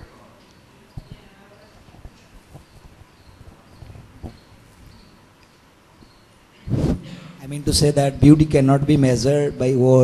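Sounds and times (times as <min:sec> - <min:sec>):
low room noise: 0:00.0 - 0:10.0
faint irregular knocks and taps: 0:00.9 - 0:04.5.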